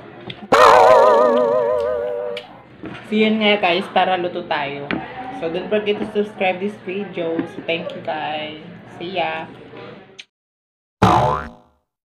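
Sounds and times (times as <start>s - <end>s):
cartoon boing: 0.5s - 2.4s, 11.0s - 11.8s.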